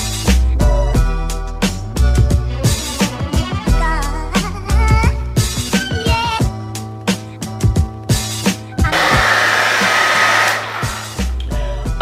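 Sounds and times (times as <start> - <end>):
background music with steady beat: 0.0 - 12.0
blow dryer blowing: 8.8 - 11.2.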